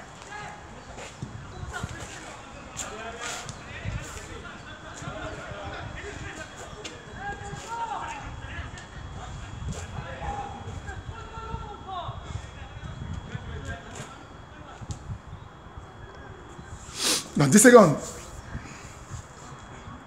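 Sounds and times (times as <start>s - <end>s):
faint distant voices: 0.0s - 20.0s
outdoor background noise: 0.0s - 20.0s.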